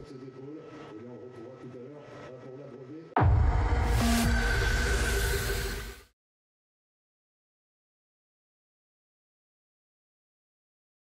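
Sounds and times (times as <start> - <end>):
bass-heavy electronic music: 3.2 - 5.7.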